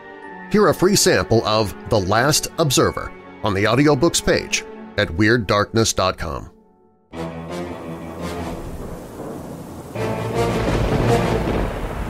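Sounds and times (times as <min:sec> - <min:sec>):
rain: 0:07.4 - 0:12.0
rumbling thunder: 0:08.0 - 0:12.0.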